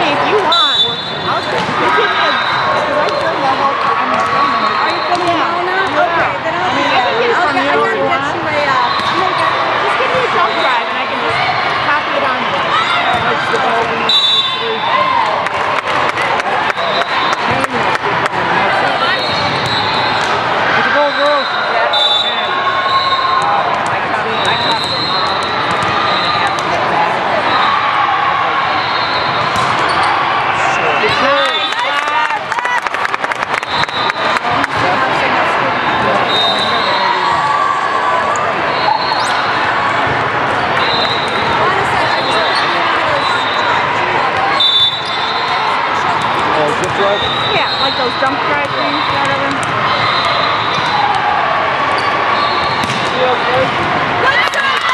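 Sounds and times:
players chatter and calls: 0.0 - 54.9
volleyballs hit and bouncing: 2.9 - 6.0, 29.3 - 30.2, 48.6 - 51.3, 51.9 - 54.9.

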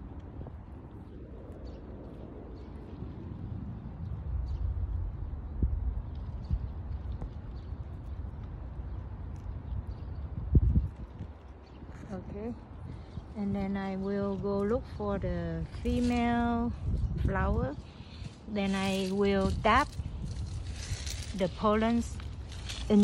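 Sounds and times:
steady low rumble: 0.0 - 23.0.

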